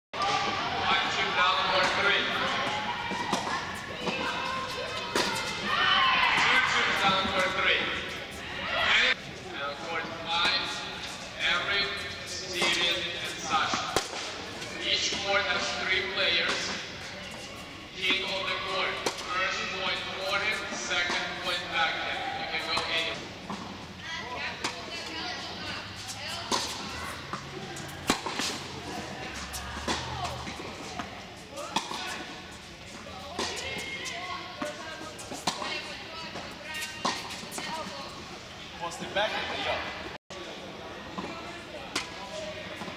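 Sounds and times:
tennis racket hitting ball: 13.6 - 14.4, 26.2 - 32.2, 33.3 - 37.9.

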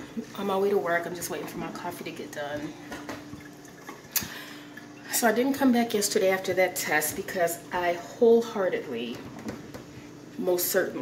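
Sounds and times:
coffee maker humming: 0.0 - 11.0
faint ticking and dripping: 2.5 - 5.6.

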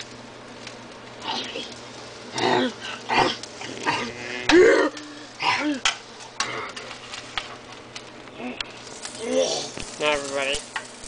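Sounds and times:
person making zombie noises: 2.4 - 6.8, 8.4 - 9.8.

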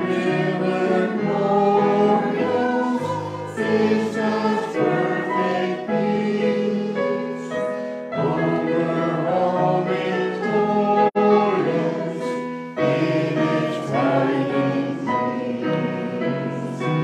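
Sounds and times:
congregation singing a hymn: 0.0 - 17.0.

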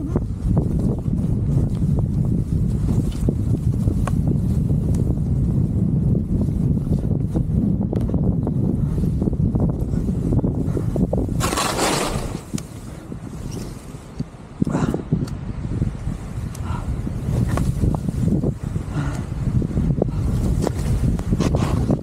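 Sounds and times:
wind buffeting microphone: 0.0 - 22.0.

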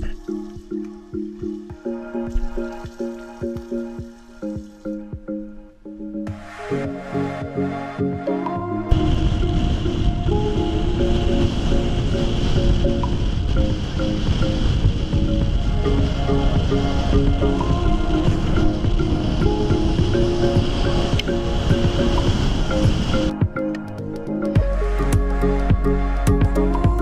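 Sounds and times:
background music: 0.0 - 27.0
wind and road noise: 6.3 - 24.7.

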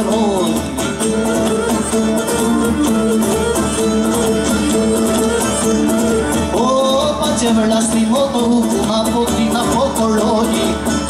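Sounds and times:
bowed fiddle melody: 0.0 - 11.0
drums: 0.0 - 11.0
strummed lute: 0.0 - 11.0.

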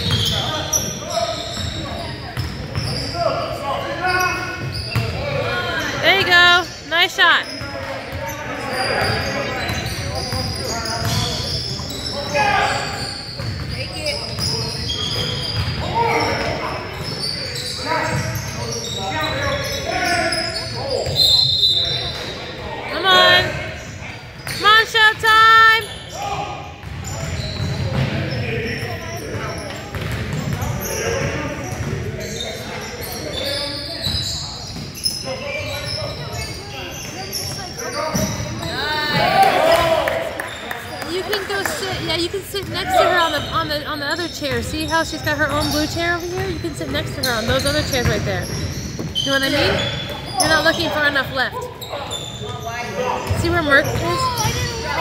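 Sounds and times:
sneakers squeaking: 0.0 - 55.0
basketball bouncing on court: 1.5 - 3.0, 4.6 - 5.3, 9.0 - 11.9, 13.3 - 15.9, 26.8 - 28.3, 29.5 - 32.1, 37.1 - 39.4, 41.3 - 43.7, 44.4 - 50.9, 53.2 - 55.0.

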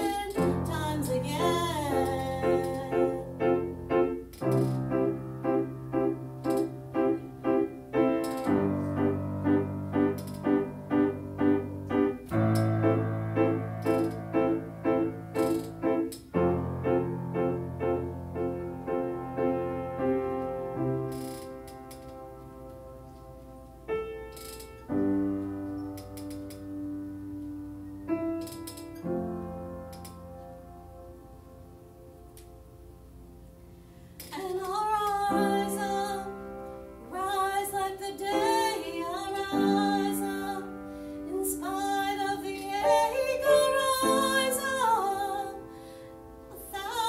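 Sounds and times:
person singing: 0.0 - 3.4, 37.1 - 40.7, 41.3 - 45.6
musical accompaniment: 0.0 - 33.7
piano chords ringing: 0.0 - 47.0
soft clicks: 24.3 - 26.7.

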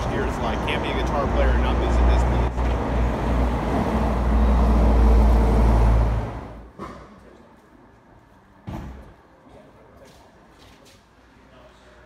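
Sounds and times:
street traffic rumble: 0.0 - 11.9.

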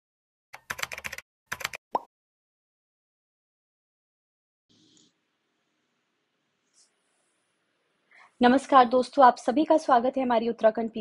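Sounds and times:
keyboard typing clicks: 0.6 - 1.8.

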